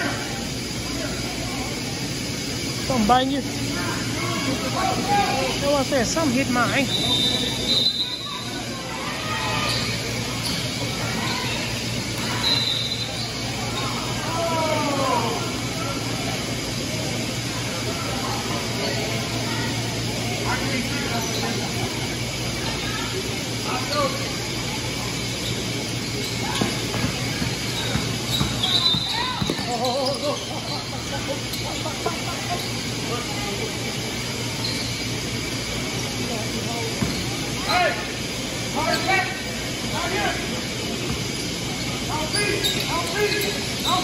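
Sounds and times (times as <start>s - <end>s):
reverberant hall hum: 0.0s - 44.0s
shoe squeak: 6.6s - 8.7s, 9.4s - 14.1s, 25.0s - 33.0s, 34.5s - 35.5s, 36.9s - 37.9s, 41.0s - 44.0s
basketball bouncing on court: 26.5s - 30.2s, 37.0s - 37.3s.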